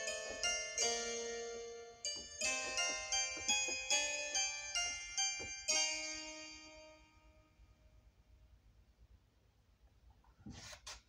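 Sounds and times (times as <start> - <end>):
electronic keyboard harpsichord notes: 0.0 - 7.4.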